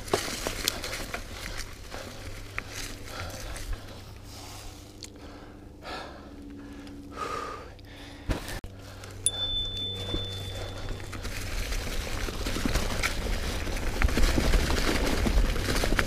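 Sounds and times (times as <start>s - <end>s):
person breathing hard and gasping: 0.8s - 8.9s.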